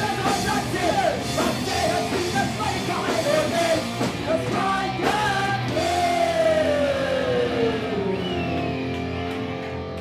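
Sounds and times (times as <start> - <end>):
electric guitars ringing out: 0.0 - 10.0.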